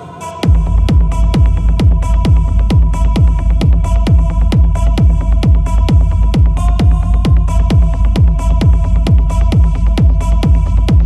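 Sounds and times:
heavy kick drum beat: 0.3 - 11.0.

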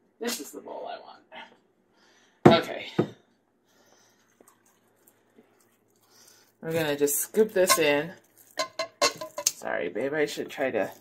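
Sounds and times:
bowls clicking: 7.6 - 9.6
kitchenware knocking on dish: 8.6 - 9.5.

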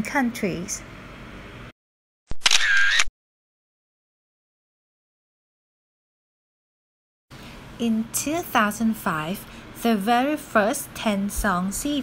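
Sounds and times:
sharp click: 2.3 - 3.1.

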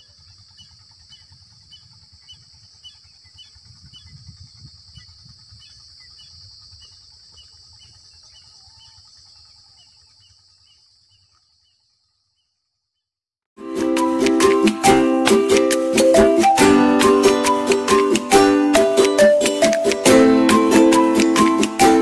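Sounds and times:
bird chirping: 0.0 - 13.1.

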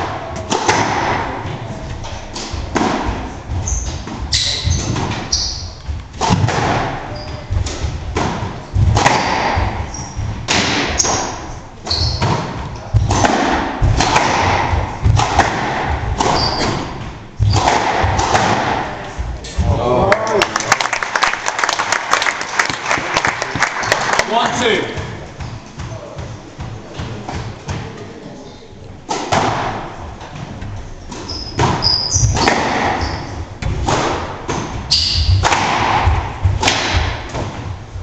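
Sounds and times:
squash ball hitting walls: 0.0 - 20.3, 22.7 - 28.0, 29.0 - 38.0
shoes squeaking on wooden floor: 1.4 - 6.2, 6.9 - 13.2, 16.2 - 17.7, 25.1 - 28.8, 30.0 - 33.7.

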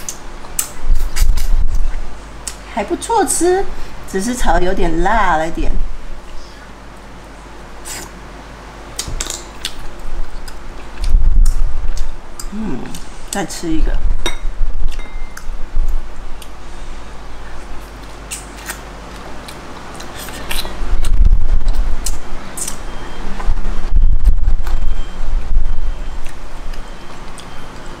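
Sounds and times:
low thumps and rumbling: 20.9 - 22.4, 23.2 - 26.8.

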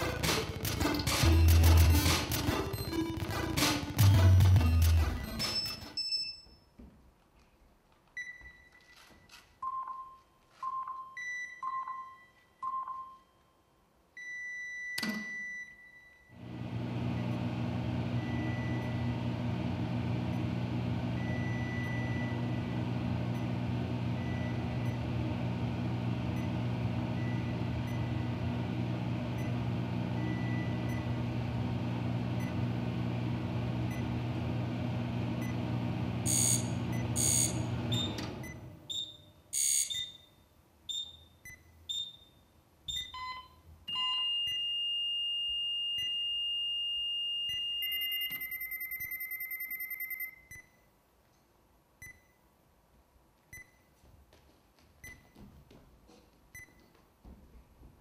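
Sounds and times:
long high beep: 36.2 - 38.1, 43.9 - 50.6
short buzzing tone: 36.2 - 38.2
electronic beeps and blips: 36.3 - 38.1.

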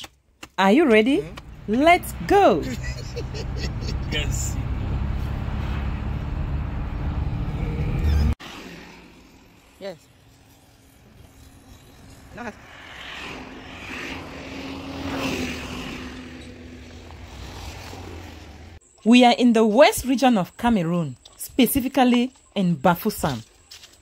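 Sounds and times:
car engine and tyre rumble: 0.9 - 18.8
person laughing: 2.6 - 4.5.

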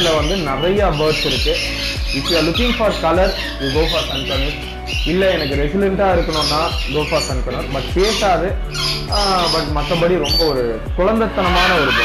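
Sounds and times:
background music with steady beat: 0.0 - 12.0
person talking: 0.0 - 12.0.

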